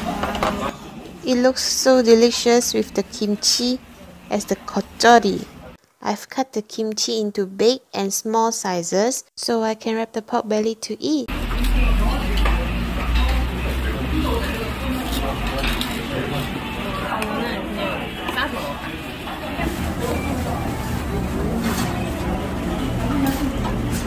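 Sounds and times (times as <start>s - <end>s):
indistinct voices: 11.3s - 24.0s.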